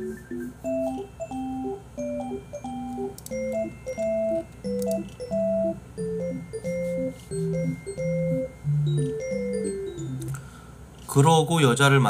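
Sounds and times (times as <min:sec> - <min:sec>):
gentle melody of held notes: 0:00.0 - 0:10.4.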